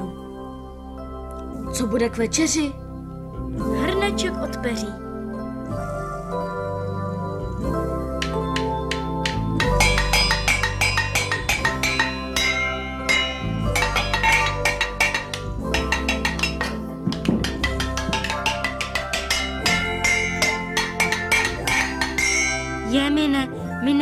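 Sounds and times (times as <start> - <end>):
musical backing with low notes: 0.0 - 24.0
sticks clanging on metal pots: 8.1 - 23.6.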